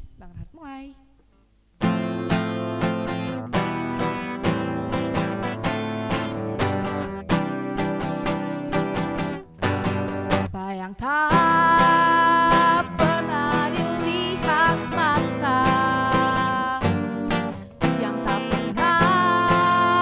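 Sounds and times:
acoustic guitar strumming: 0:01.8 - 0:10.6, 0:11.3 - 0:20.0
woman singing into a microphone: 0:10.5 - 0:20.0.

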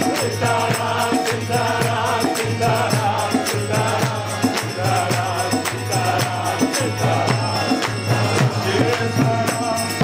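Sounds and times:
hand cymbals keeping a beat: 0:00.0 - 0:10.0.

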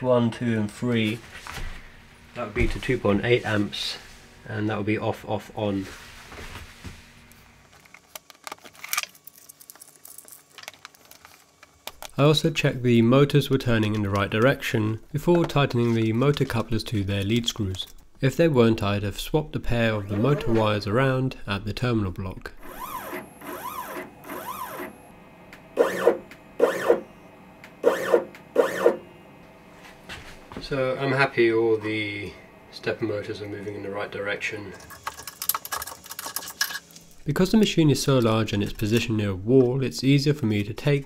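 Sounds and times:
stepper motor whines: 0:22.6 - 0:29.1
stepper motor buzzes: 0:22.6 - 0:29.2.

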